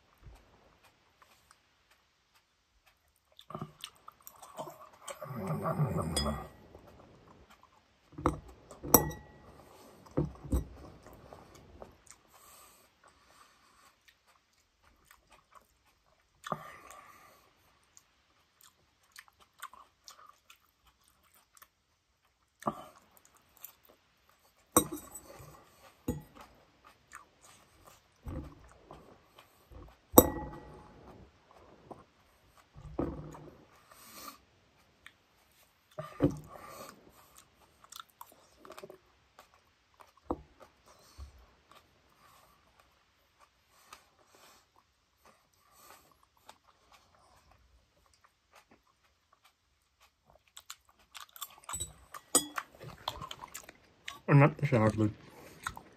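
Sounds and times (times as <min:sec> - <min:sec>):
chewing and mouth sounds: 0:00.0 - 0:55.9.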